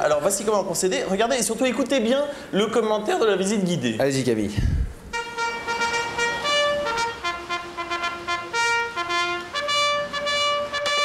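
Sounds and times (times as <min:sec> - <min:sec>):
buzzy horn-like instrument tune: 0:05.1 - 0:11.0.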